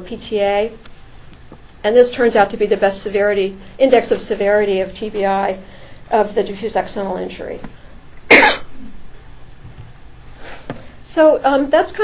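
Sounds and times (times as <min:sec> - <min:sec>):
loud cough: 0:08.3 - 0:08.9.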